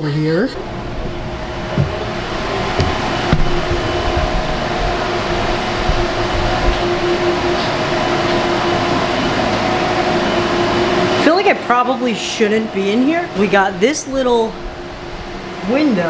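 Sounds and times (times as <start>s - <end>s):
cooling fans whirring: 0.0s - 16.0s
steady mid-pitched tone: 0.4s - 16.0s
faint knocks: 1.0s - 5.0s.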